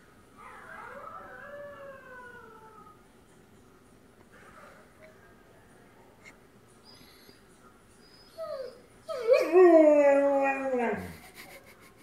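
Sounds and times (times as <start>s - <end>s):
dog howling: 0.4s - 3.0s.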